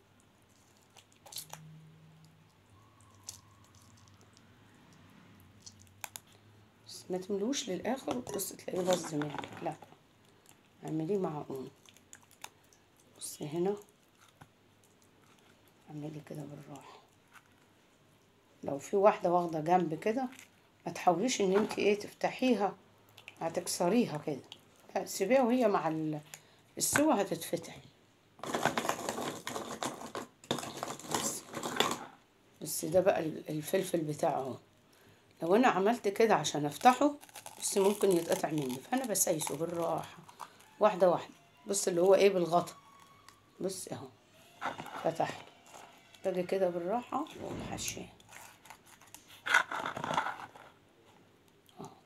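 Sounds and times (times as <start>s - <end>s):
crinkly crackling of frozen vegetables: 11.2s - 15.8s, 28.4s - 32.1s, 36.4s - 40.8s, 48.3s - 50.8s.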